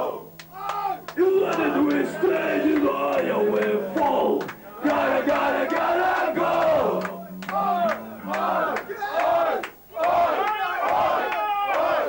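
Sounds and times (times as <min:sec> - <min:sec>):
low steady tone: 0:00.0 - 0:10.1
crowd shouting together: 0:00.0 - 0:12.0.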